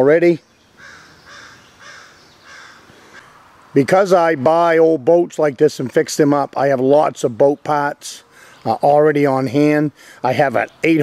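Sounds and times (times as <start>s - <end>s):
bird short rough calls: 0.8s - 3.5s.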